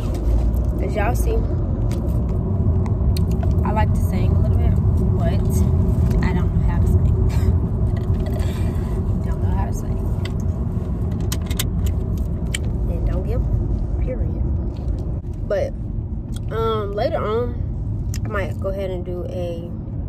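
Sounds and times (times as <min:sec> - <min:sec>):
road and engine rumble in car: 0:00.0 - 0:20.0.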